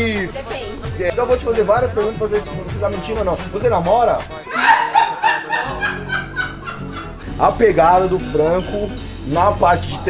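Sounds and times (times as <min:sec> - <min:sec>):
music playing: 0:00.0 - 0:10.0
person snickering: 0:04.4 - 0:07.3.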